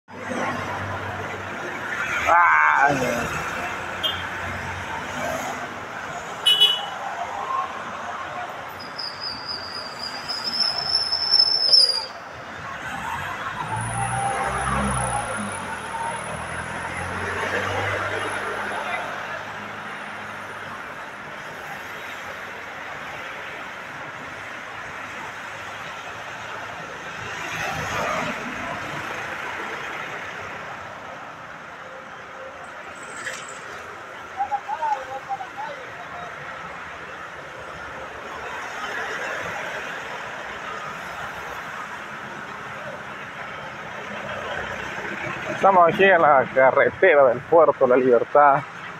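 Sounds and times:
vehicles passing: 0:00.1 - 0:48.9
high whistle-like tone: 0:08.9 - 0:12.2.

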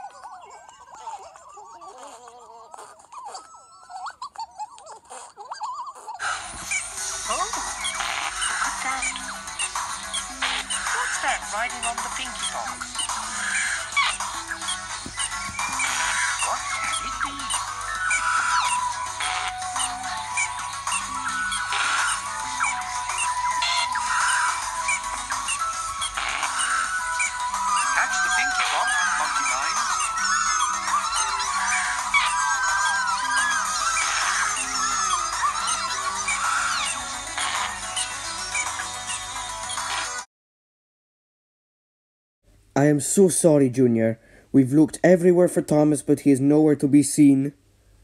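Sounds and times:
chirping sounds: 0:00.0 - 0:40.2
high squeaky character chatter: 0:00.0 - 0:40.2
music: 0:06.2 - 0:40.3.

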